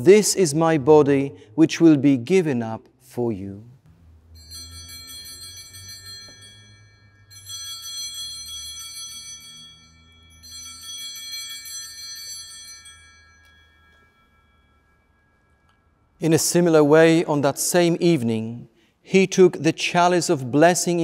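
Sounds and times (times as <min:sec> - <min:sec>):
altar bell ringing: 0:03.9 - 0:17.9.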